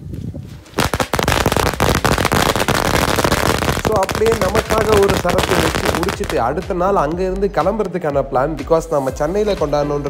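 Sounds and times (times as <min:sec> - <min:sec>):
firecrackers going off: 0:00.8 - 0:06.5.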